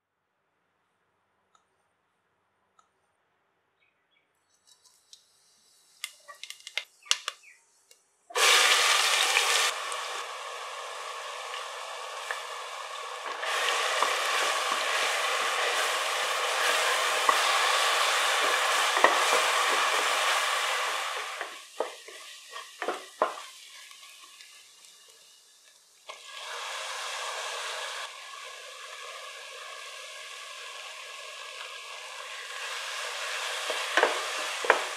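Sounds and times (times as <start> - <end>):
seeds crackling in hot oil: 4.6 - 7.5, 8.3 - 34.9
onions sizzling in oil: 8.3 - 34.9
wooden spatula scraping pan: 13.5 - 20.4.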